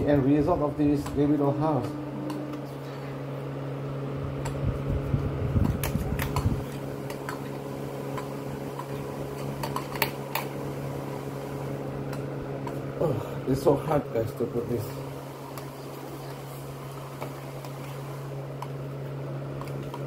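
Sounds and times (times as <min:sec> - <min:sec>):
steady mechanical hum: 0:00.0 - 0:20.0.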